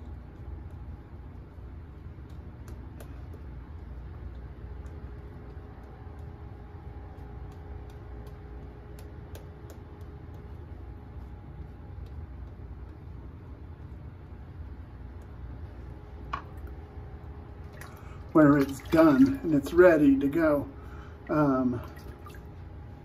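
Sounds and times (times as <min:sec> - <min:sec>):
steady low hum: 0:00.0 - 0:23.0
lather clicks and crackles: 0:00.1 - 0:18.3.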